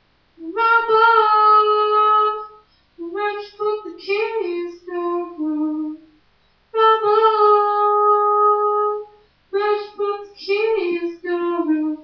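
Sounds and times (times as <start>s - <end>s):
woman singing unaccompanied: 0.4s - 6.2s, 6.8s - 12.0s.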